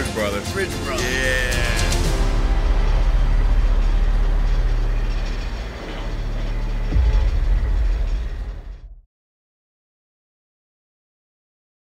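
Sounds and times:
deep low rumble: 1.4 - 9.1.

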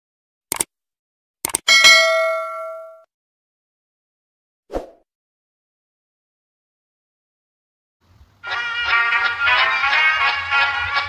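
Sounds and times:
bell-like ding: 1.7 - 3.1.

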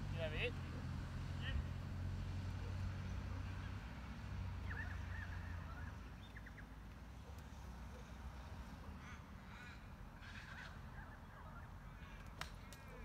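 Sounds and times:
bird calls and chirps: 4.6 - 8.2.

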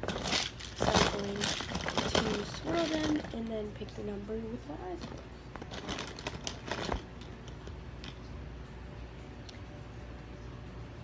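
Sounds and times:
plastic marker pens clattering: 0.0 - 3.6, 5.0 - 7.3.

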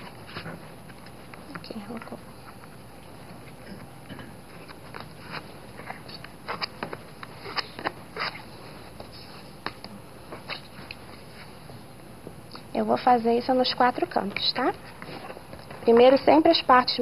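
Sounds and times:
paper and fabric rustling: 0.0 - 3.6, 4.5 - 11.9, 13.7 - 17.0.

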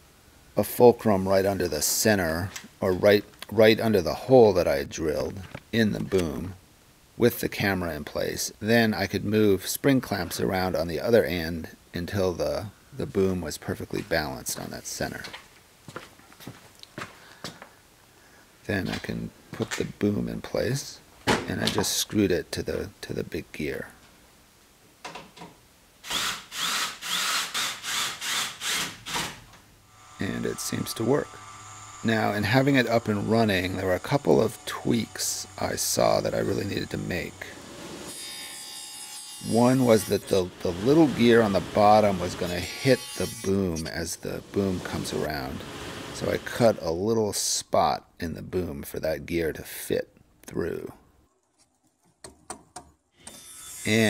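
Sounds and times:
cordless drill driving screws: 26.0 - 29.4.

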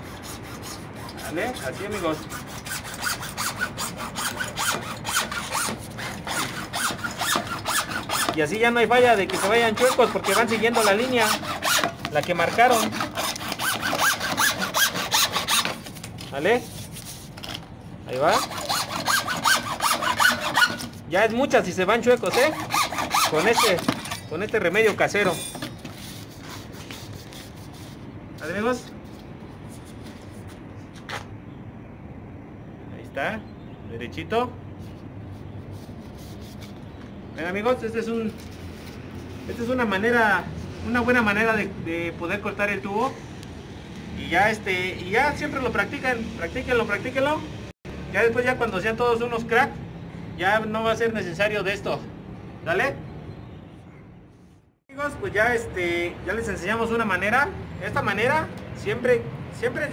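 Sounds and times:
hacksaw cutting plastic pipe: 0.0 - 15.9, 18.3 - 21.0, 22.1 - 25.0.

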